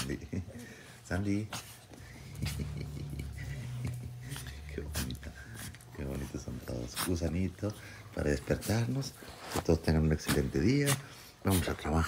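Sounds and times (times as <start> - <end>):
low steady rumble: 2.0 - 9.0.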